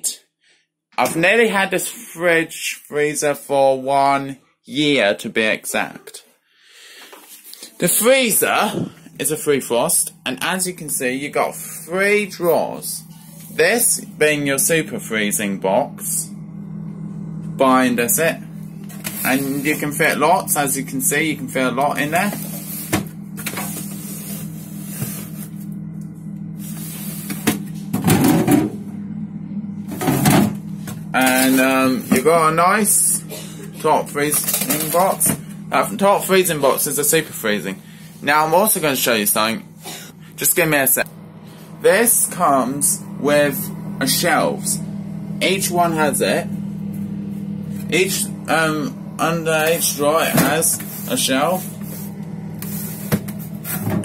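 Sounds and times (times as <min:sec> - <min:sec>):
steady low hum: 0:07.2 - 0:54.0.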